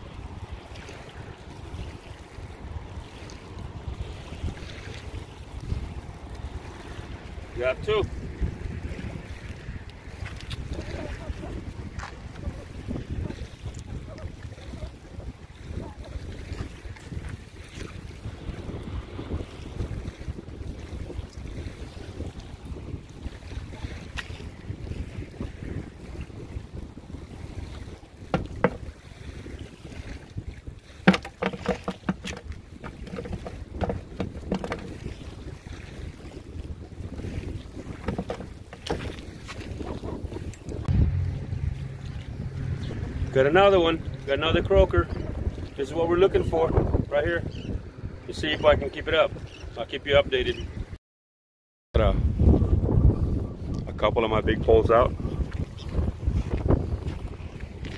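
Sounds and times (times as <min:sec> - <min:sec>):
wind buffeting microphone: 0:00.0 - 0:51.0, 0:52.0 - 0:57.9
sharp clicks and knocks: 0:31.0 - 0:34.9.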